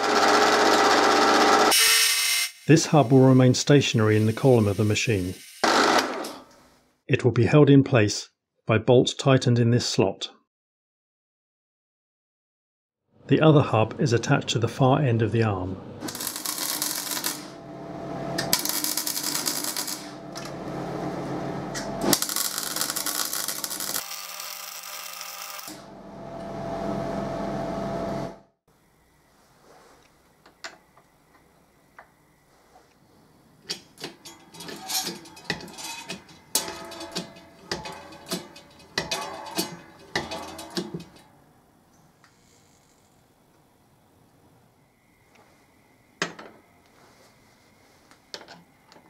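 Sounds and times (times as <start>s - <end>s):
arc welding crackling: 16.0s - 21.0s, 21.7s - 25.8s
metal clicks and clinks: 33.7s - 41.2s.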